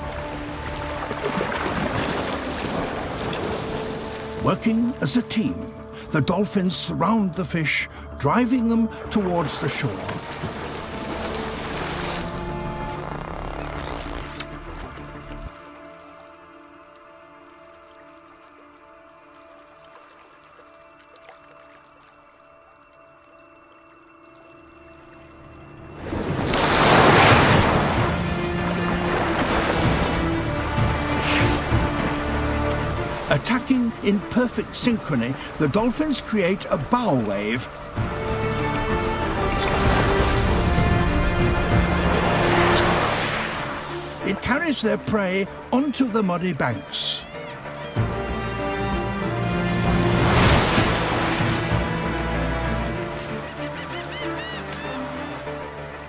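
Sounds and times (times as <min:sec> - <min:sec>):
soft background music: 0:00.0 - 0:56.0
water rushing and splashing: 0:00.0 - 0:56.0.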